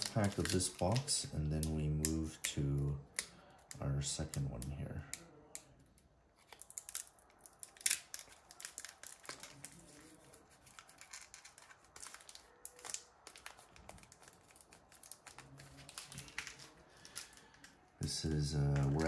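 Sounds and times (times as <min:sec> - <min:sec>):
foil wrapper crinkling and tearing: 0:00.0 - 0:04.5, 0:06.4 - 0:19.0.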